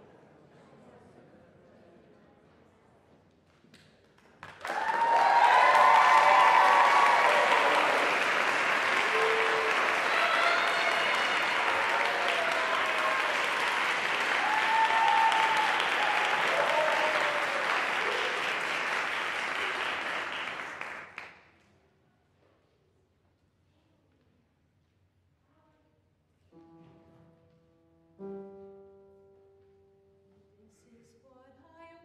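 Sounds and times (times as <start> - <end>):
audience applauding: 4.2 - 21.4
voices cheering: 4.6 - 21.1.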